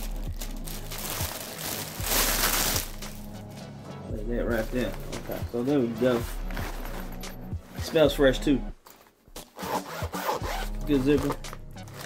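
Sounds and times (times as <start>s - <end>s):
fabric satchel rustling: 0.0s - 3.6s, 4.5s - 8.0s
background music: 0.0s - 12.0s.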